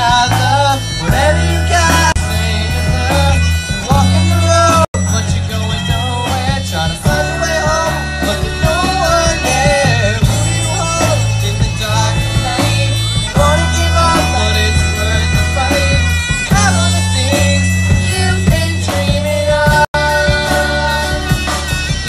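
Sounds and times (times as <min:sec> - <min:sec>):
country band playing: 0:00.0 - 0:22.0.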